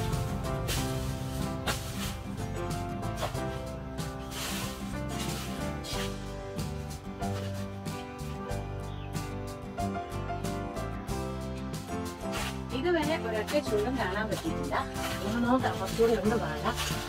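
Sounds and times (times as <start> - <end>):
instrumental background music: 0.0 - 17.0.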